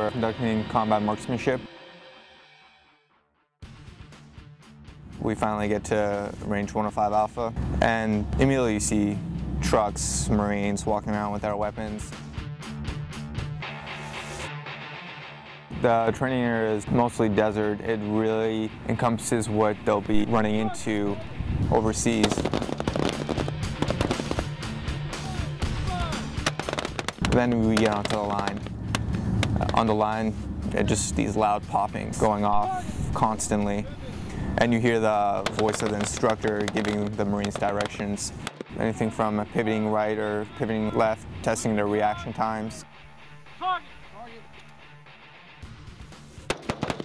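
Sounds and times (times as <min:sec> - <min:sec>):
background music: 0:00.0 - 0:47.0
rifle shots: 0:22.2 - 0:24.6, 0:26.4 - 0:28.6, 0:35.4 - 0:38.8, 0:46.4 - 0:47.0
low musical drone: 0:27.2 - 0:35.6.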